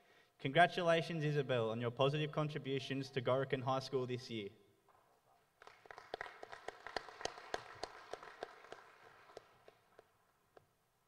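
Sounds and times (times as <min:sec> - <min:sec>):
people clapping: 0:05.5 - 0:10.7.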